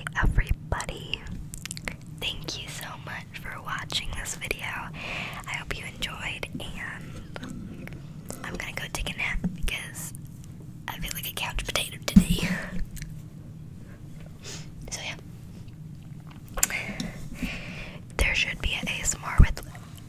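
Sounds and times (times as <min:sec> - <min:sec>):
girl whispering: 0:00.0 - 0:01.4, 0:02.2 - 0:07.4, 0:08.4 - 0:10.1, 0:10.9 - 0:12.8, 0:14.9 - 0:15.2, 0:18.2 - 0:19.7.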